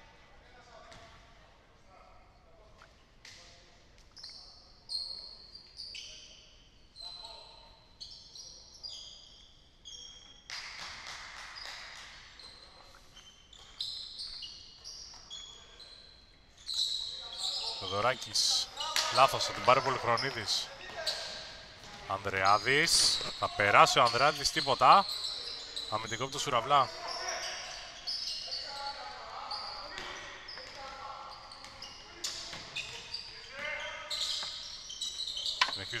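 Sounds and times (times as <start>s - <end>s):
players' voices: 17.1s - 34.4s, 35.6s - 36.0s
shoes squeaking on hardwood: 17.6s - 28.5s, 31.5s - 36.0s.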